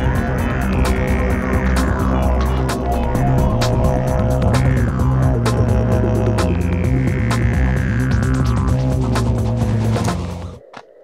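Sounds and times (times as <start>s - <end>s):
didgeridoo drone: 0.0s - 10.8s.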